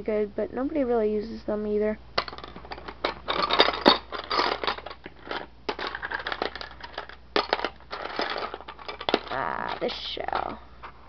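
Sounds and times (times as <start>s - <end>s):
seashells clattering in plastic bin: 2.2s - 10.6s.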